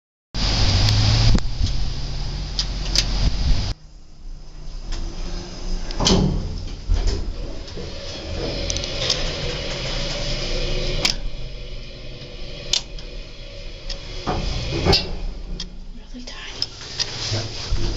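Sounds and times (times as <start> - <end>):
elevator car humming: 0.4 - 17.9
elevator doors closing knock: 4.8 - 16.1.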